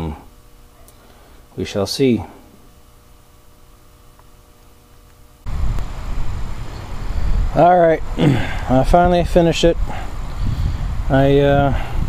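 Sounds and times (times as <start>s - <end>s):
faint steady hum: 0.0s - 12.0s
wind buffeting microphone: 5.5s - 12.0s.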